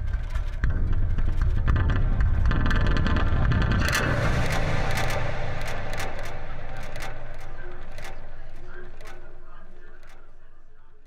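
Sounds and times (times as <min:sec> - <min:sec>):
low rumbling drone: 0:00.0 - 0:11.0
clicks: 0:03.8 - 0:10.3.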